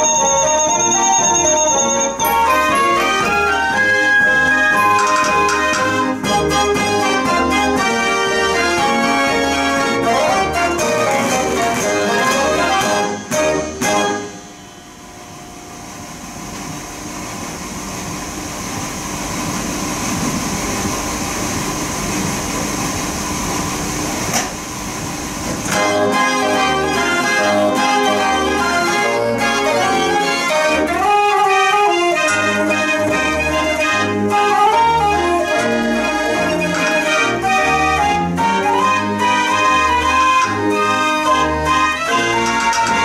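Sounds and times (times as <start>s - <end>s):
dance organ playing: 0.0s - 15.4s, 25.7s - 43.0s.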